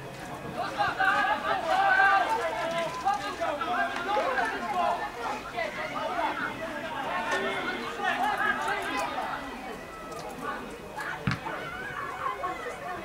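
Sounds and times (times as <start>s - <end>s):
crowd chatter: 0.0s - 13.0s
people calling out: 0.6s - 13.0s.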